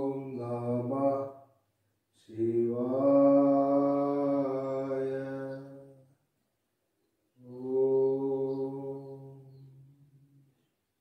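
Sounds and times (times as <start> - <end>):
person chanting low note: 7.4 - 10.1.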